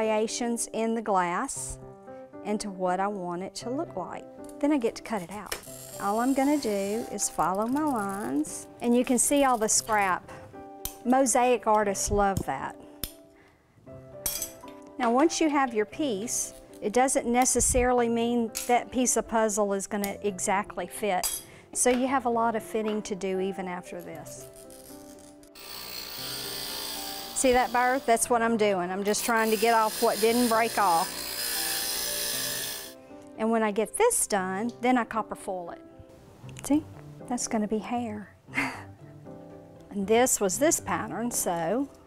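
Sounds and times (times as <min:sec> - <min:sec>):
soft background music: 0:00.0 - 0:42.0
glass grinder hissing: 0:05.6 - 0:08.4, 0:24.5 - 0:28.3, 0:29.1 - 0:33.0
glass cutter clicking on glass: 0:25.6 - 0:28.1, 0:29.1 - 0:33.0.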